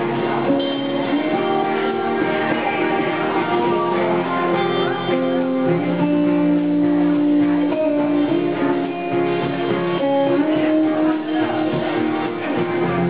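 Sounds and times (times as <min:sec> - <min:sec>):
live band playing slow rock: 0:00.0 - 0:13.0.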